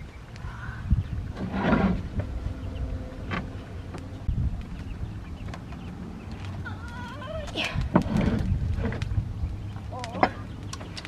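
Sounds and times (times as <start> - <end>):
fish scraping on wood: 1.3 - 2.3.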